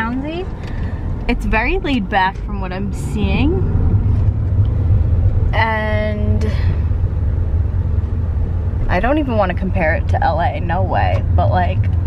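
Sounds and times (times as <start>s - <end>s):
car cabin low rumble: 0.0s - 12.0s.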